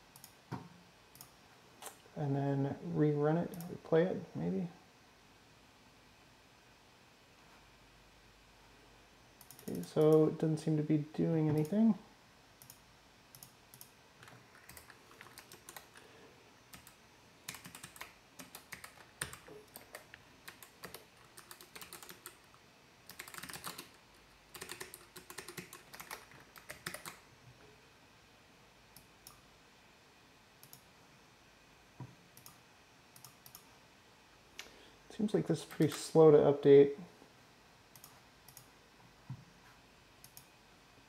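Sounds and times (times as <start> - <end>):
typing on computer keyboard: 13.4 - 16.0, 16.7 - 22.5, 23.1 - 27.2.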